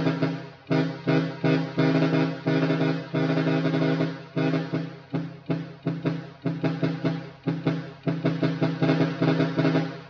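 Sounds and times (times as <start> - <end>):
stuttering trumpet horn blasts: 0.0 - 10.0.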